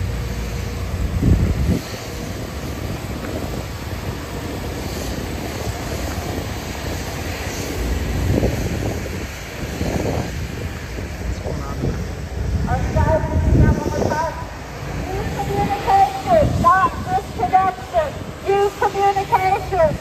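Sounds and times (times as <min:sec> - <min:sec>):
steady engine drone: 0:00.0 - 0:20.0
street noise: 0:00.0 - 0:20.0.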